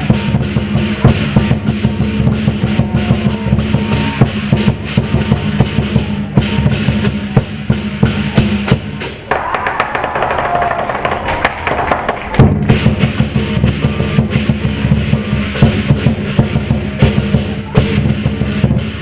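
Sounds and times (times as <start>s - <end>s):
cymbals clashing: 0.0s - 11.6s, 12.2s - 19.0s
drum pounding: 0.0s - 19.0s.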